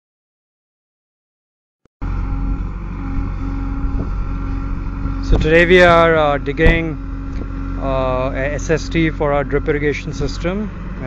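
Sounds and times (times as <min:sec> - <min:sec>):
diesel engine running: 0:02.0 - 0:11.0.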